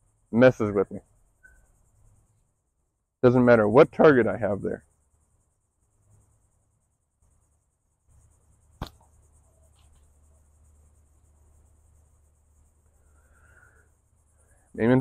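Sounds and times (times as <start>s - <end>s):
high insect buzz: 0.0s - 15.0s
ball tapping fabric backstop: 8.8s - 9.2s.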